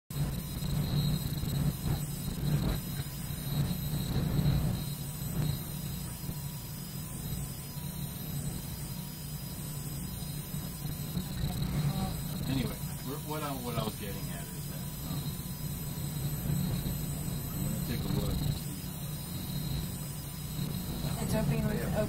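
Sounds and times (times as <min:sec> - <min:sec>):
office background hum: 0:00.1 - 0:22.0
high-pitched electronic tones: 0:00.3 - 0:22.0.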